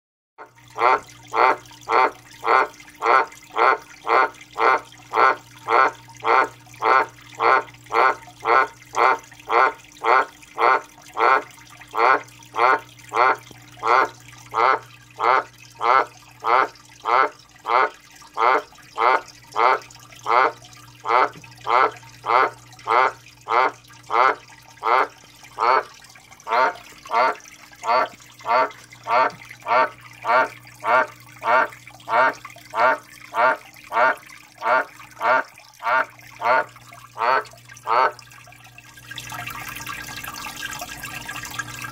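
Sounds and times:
tree frog croaking: 0.8s - 25.9s, 26.5s - 38.2s.

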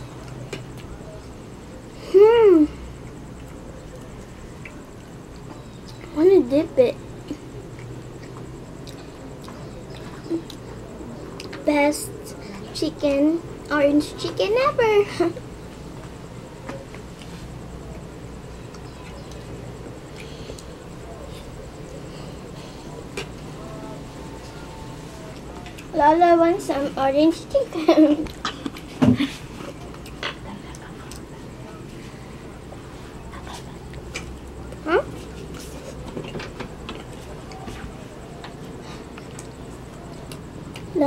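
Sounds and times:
child chewing food: 0.0s - 2.0s, 2.8s - 6.1s, 7.1s - 12.8s, 15.4s - 26.0s, 28.0s - 41.0s
eating sounds: 7.1s - 12.8s, 28.2s - 41.0s.

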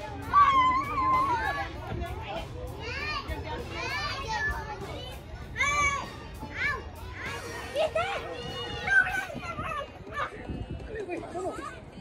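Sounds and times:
children calling and squealing: 0.0s - 12.0s.

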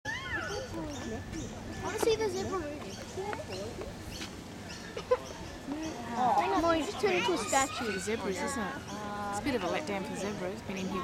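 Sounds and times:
people talking indistinctly: 0.2s - 11.0s.

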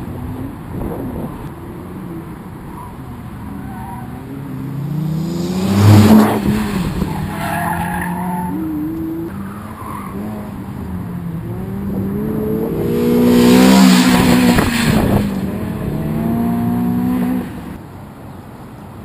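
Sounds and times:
race car engines accelerating: 0.0s - 17.8s
car passing close by: 4.6s - 8.2s, 11.7s - 17.8s
tyres squealing: 7.0s - 10.3s.

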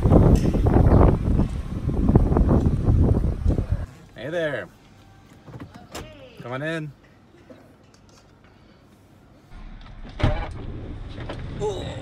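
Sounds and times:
passengers boarding minivan: 0.0s - 11.6s.

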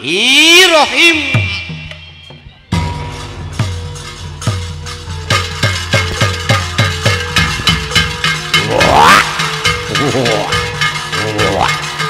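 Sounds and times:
heavy drum strokes: 1.0s - 12.0s
held instrumental notes: 1.1s - 12.0s.

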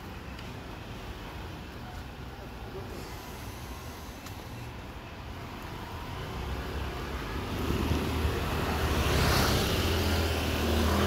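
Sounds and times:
motorbike passing by: 6.4s - 11.0s.

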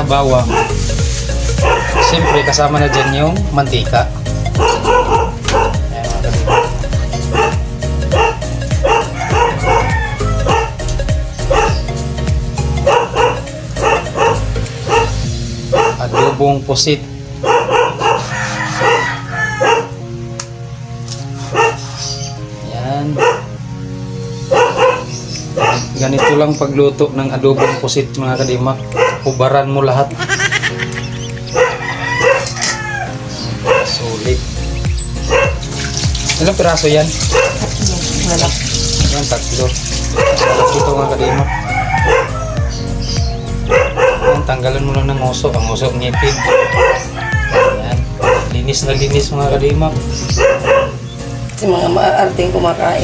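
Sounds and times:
music with deep thumping beat: 0.0s - 15.8s, 34.2s - 53.0s
dog-bark-like sounds: 0.3s - 0.8s, 1.6s - 3.1s, 4.5s - 11.9s, 12.8s - 16.5s, 17.4s - 20.0s, 21.4s - 22.3s, 23.0s - 23.6s, 24.4s - 26.7s, 27.4s - 28.1s, 28.8s - 29.5s, 31.4s - 32.8s, 33.5s - 34.2s, 35.2s - 36.1s, 37.2s - 42.8s, 43.6s - 44.8s, 46.2s - 48.9s, 50.2s - 51.0s.

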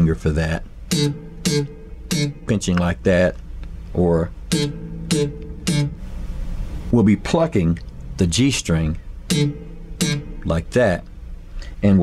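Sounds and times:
electric bass string popped: 0.9s - 3.4s, 4.5s - 6.2s, 9.3s - 11.0s.

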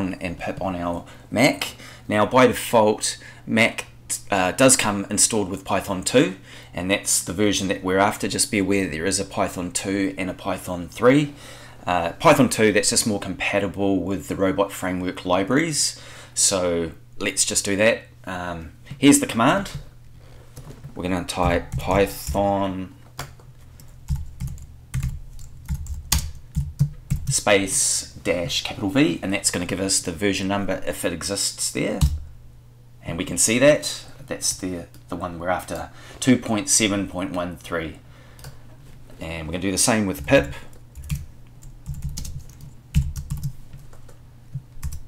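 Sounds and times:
computer keyboard typing: 23.2s - 27.4s, 40.9s - 44.1s, 44.8s - 45.0s.

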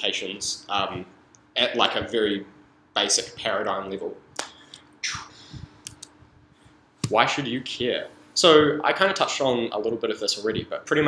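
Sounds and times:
short breath: 4.6s - 5.9s.

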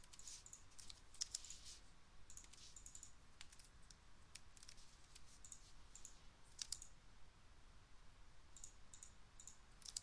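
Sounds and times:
computer mouse and keyboard clicks: 0.0s - 1.7s, 2.3s - 7.0s, 8.6s - 10.0s.

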